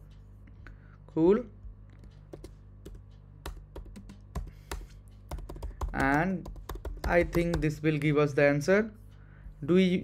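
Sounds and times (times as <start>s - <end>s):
computer keyboard typing: 1.9s - 7.8s.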